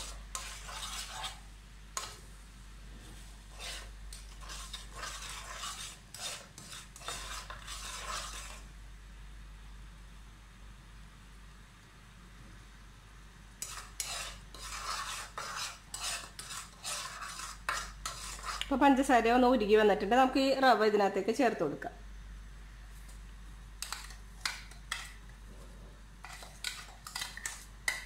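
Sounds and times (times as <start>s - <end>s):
metal spoon scraping in a pan: 0.0s - 2.2s, 3.2s - 8.7s, 13.6s - 18.8s, 23.8s - 25.2s, 26.2s - 28.0s
faint sizzle of bubbling fat: 0.0s - 21.2s.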